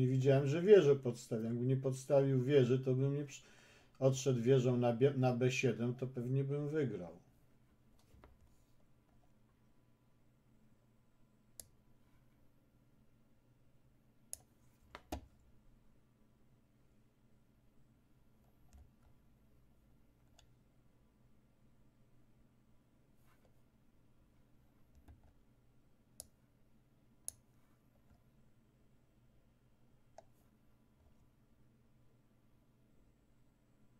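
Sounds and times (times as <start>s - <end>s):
computer mouse clicks: 11.6s - 11.8s, 14.3s - 15.4s, 20.2s - 20.6s, 24.9s - 25.4s, 26.2s - 26.4s, 27.2s - 28.2s, 30.1s - 30.4s.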